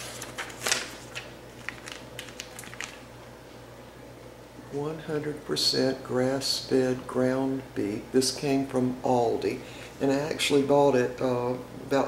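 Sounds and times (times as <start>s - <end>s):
plastic wrap crinkling: 0.0s - 3.1s
faint steady hum: 0.0s - 12.0s.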